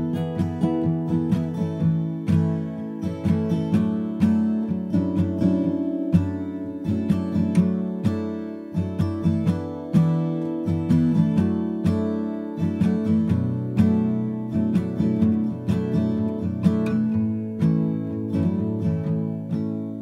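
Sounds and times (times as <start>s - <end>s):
acoustic guitar piece: 0.0s - 20.0s.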